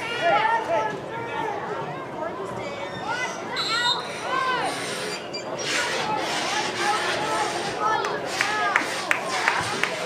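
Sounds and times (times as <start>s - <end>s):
spectators calling out and talking: 0.0s - 10.0s.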